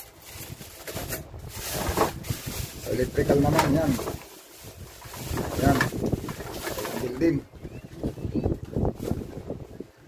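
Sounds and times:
plastic bags rustling: 0.0 - 9.9.

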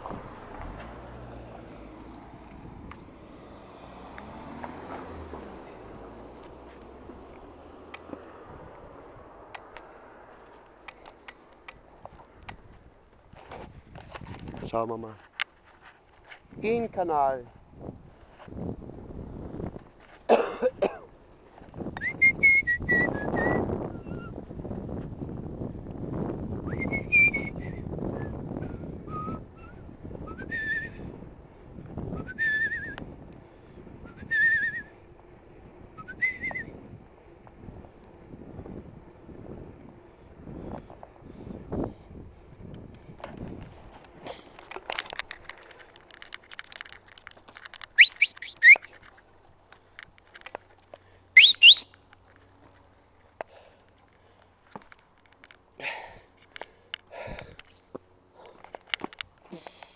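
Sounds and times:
wind on microphone: 0.0 - 4.4, 12.1 - 14.8, 16.4 - 20.0, 21.6 - 35.0, 35.6 - 44.2
person whistling short notes: 22.0 - 24.4, 26.7 - 28.4, 29.1 - 31.0, 32.2 - 33.0, 34.1 - 34.9, 36.0 - 36.7, 48.0 - 48.9, 51.4 - 52.0
sharp upward whistles: 22.0 - 24.4, 26.6 - 28.4, 29.1 - 31.0, 32.2 - 33.0, 34.1 - 34.9, 36.0 - 36.8, 48.0 - 48.9, 51.4 - 52.0.

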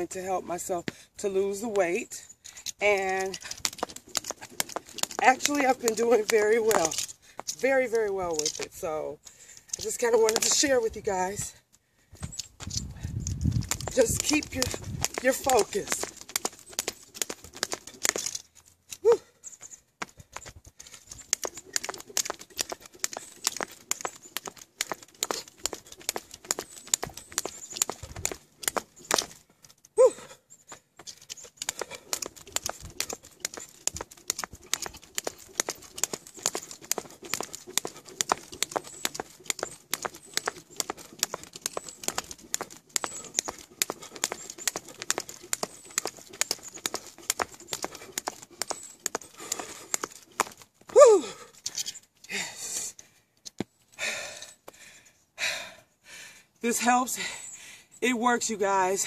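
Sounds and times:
jump rope slapping pavement: 2.6 - 11.6, 12.3 - 18.4, 20.0 - 52.6.

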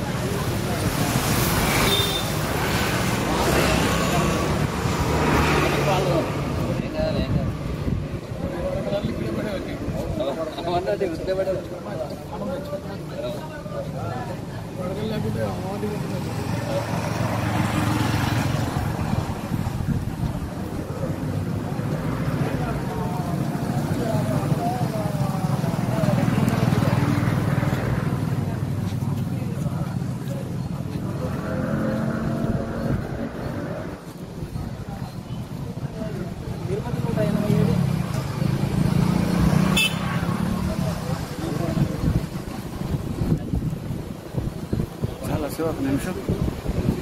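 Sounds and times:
passing vehicles: 0.0 - 47.0
men talking indistinctly: 3.2 - 19.2, 20.2 - 43.7, 44.6 - 47.0.

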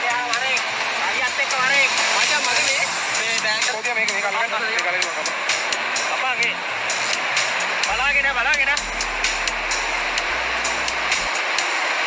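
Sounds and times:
dense background noise: 0.0 - 12.0.

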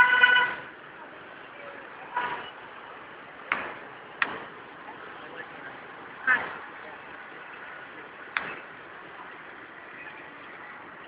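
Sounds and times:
vehicle horn beep: 0.0 - 0.7
traffic noise: 0.0 - 11.0.

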